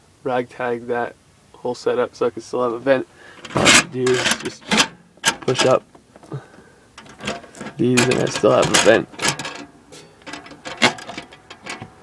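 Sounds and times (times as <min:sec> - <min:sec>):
metal window prop rod clicking: 0:03.4 - 0:05.8, 0:07.0 - 0:12.0.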